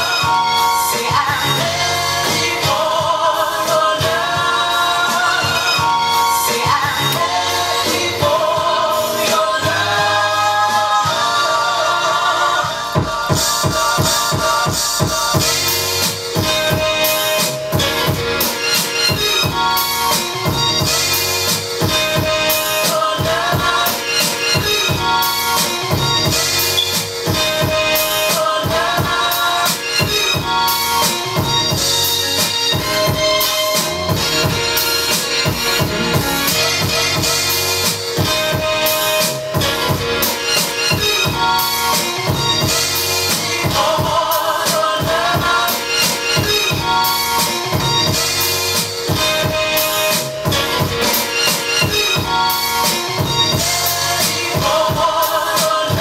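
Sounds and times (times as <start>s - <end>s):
hip-hop beat: 0.0s - 56.0s.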